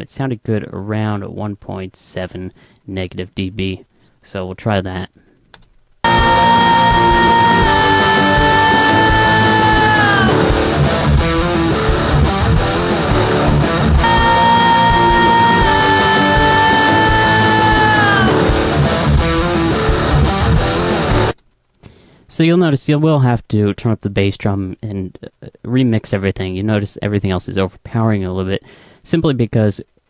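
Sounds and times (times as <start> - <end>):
held high note sliding down: 6.1 - 11.4, 14.0 - 19.5
rock band playing: 6.1 - 21.4.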